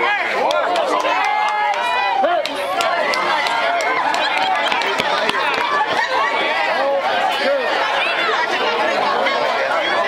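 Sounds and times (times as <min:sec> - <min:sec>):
young voices shouting and cheering: 0:00.0 - 0:10.0.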